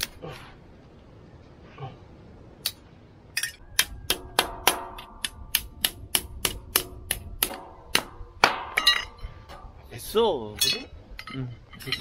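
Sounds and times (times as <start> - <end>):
hammer striking steel rod: 3.4 - 9.8.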